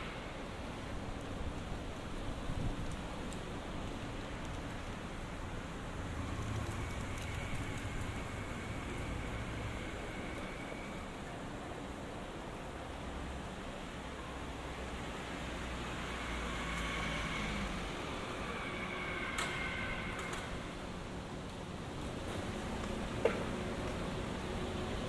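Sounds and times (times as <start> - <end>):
city street background noise: 0.0 - 25.0.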